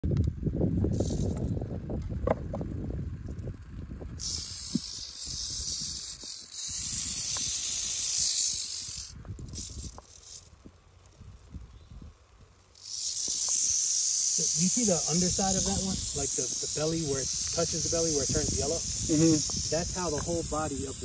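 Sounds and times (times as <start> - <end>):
rattlesnake rattling: 0.3 - 21.0.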